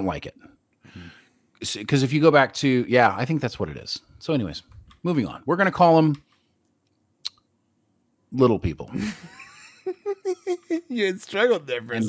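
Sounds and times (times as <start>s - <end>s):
man speaking: 10.6s - 12.0s.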